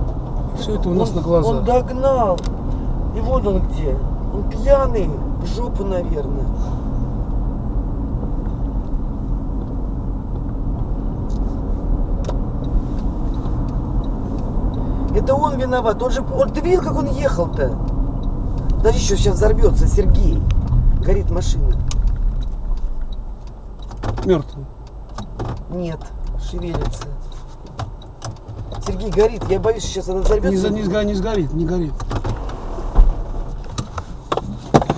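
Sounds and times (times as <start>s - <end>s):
road and engine rumble in car: 0.0s - 34.9s
sharp clicks: 12.2s - 19.6s, 20.2s - 30.2s.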